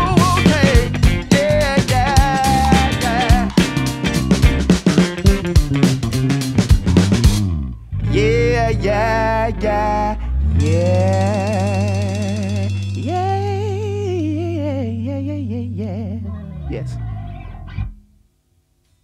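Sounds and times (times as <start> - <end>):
drum hits: 0.0 - 7.6
live funk band playing: 0.0 - 14.0.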